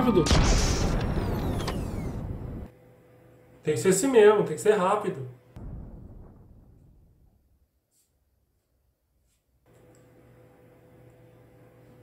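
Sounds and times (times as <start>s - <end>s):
sci-fi energy blast: 0.1s - 2.7s.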